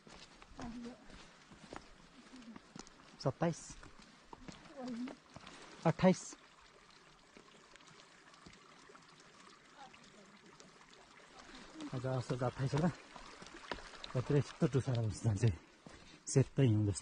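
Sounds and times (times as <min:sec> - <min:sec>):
footsteps on rocky trail: 0:00.0 - 0:05.8, 0:11.4 - 0:15.1, 0:15.7 - 0:16.3
water trickling: 0:00.0 - 0:17.0.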